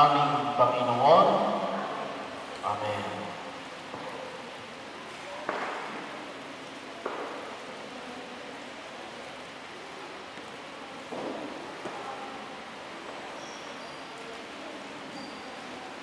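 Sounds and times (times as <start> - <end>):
steady hissing noise: 0.0 - 16.0.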